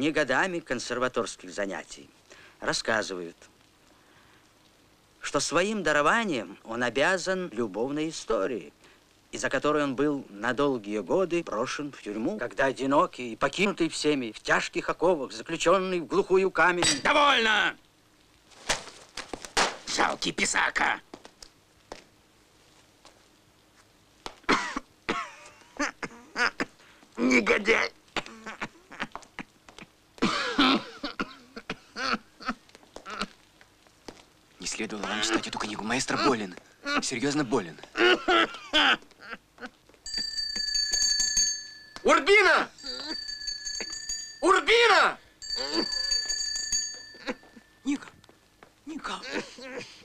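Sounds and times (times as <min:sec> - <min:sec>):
noisy breath: 0:02.2 - 0:02.6, 0:03.8 - 0:04.6, 0:08.8 - 0:09.2
small bell ringing: 0:40.0 - 0:48.3.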